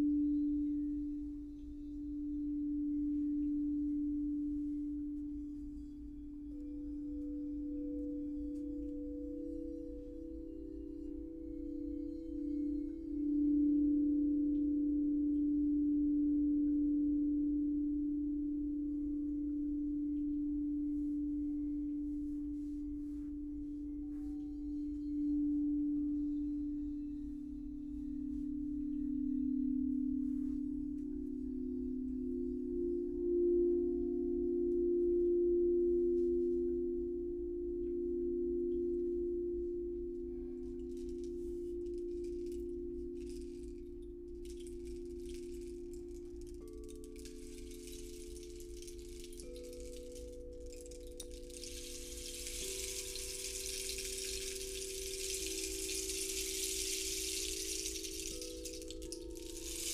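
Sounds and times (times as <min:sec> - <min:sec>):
singing bowls ringing: 0:00.0 - 0:59.9
faint high jingling: 0:40.8 - 0:59.9.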